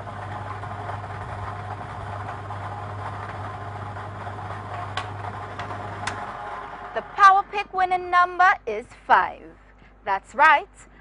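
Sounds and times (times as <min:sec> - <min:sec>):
machine humming and hissing: 0:00.0 - 0:07.6.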